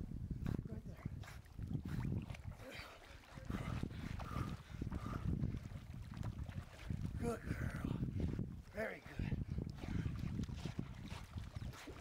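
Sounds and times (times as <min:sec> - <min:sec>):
water sloshing and splashing: 0:01.0 - 0:12.0.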